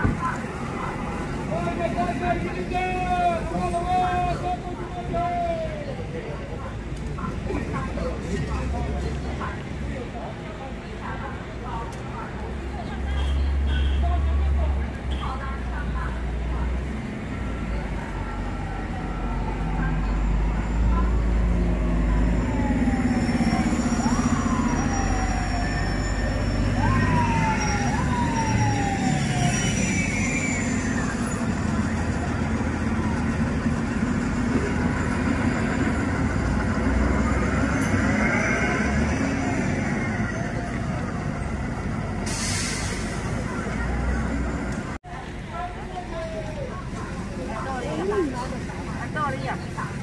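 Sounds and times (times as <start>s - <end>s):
buses pulling past: 0.0s - 50.0s
heavy street traffic: 0.0s - 50.0s
siren: 17.4s - 41.5s.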